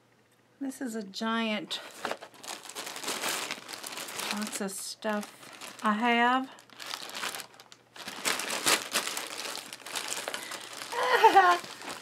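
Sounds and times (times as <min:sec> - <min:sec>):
plastic bags crinkling: 0:01.7 - 0:12.0.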